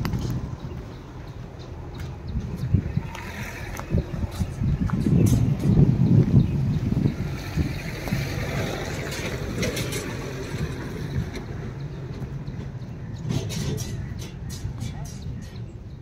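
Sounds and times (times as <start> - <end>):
truck engine rumble: 0.0 - 16.0
wind buffeting microphone: 0.0 - 16.0.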